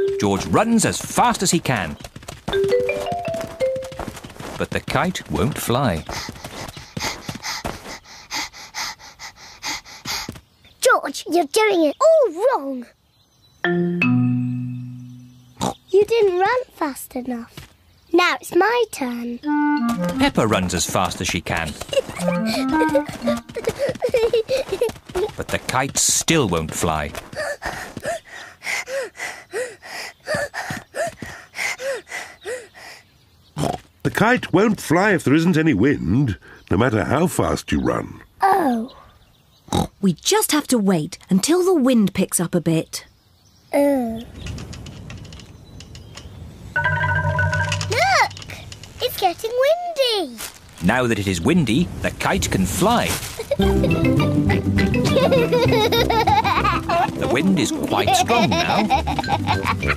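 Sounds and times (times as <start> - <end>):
child panting: 5.9 - 10.5, 21.8 - 25.4, 27.2 - 33.2.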